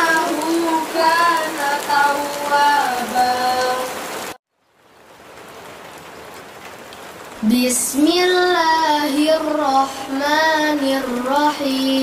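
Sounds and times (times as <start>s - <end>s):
person chanting recitation: 0.0s - 4.1s, 7.4s - 12.0s
rain hissing: 0.0s - 12.0s.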